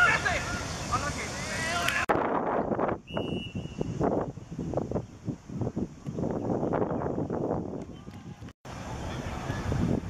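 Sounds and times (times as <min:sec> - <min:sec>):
wind buffeting microphone: 0:02.0 - 0:10.0
high whistle tone: 0:03.0 - 0:04.0.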